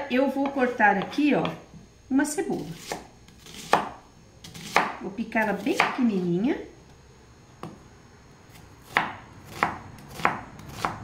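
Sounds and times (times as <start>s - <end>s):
knife chopping on cutting board: 0.4s - 1.6s, 2.7s - 6.0s, 8.5s - 11.0s.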